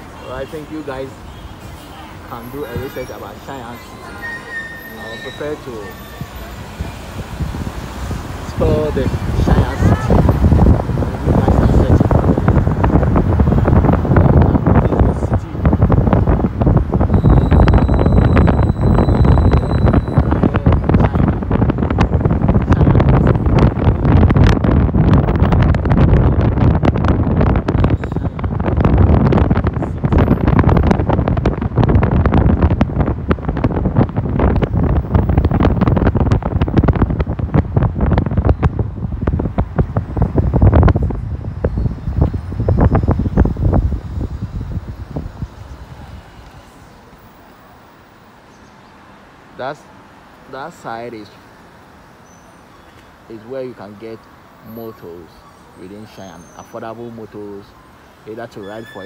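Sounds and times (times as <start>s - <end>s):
wind buffeting microphone: 0.0s - 48.2s
road and traffic noise: 0.0s - 59.0s.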